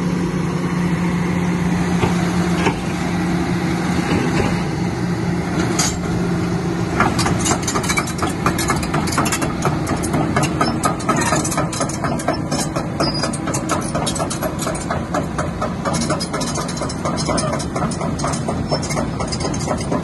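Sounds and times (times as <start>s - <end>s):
diesel engine running: 0.0s - 20.0s
steel tracks clanking: 5.5s - 20.0s.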